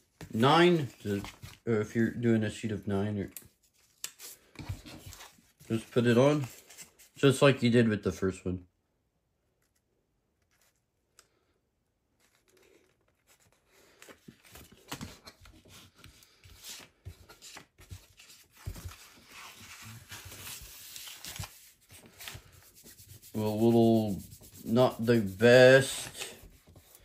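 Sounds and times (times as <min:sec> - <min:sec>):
hand rubbing paper on chipboard: 0:19.3 - 0:27.0.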